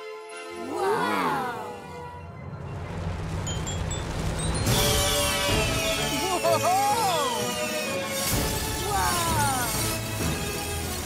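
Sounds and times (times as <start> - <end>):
background music: 0.0 - 11.0
falling sparkly tones: 0.5 - 8.6
low rumble: 1.7 - 6.0.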